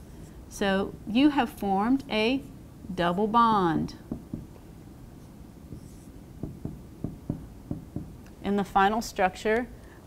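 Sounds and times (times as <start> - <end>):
marker writing on whiteboard: 5.2 - 8.1.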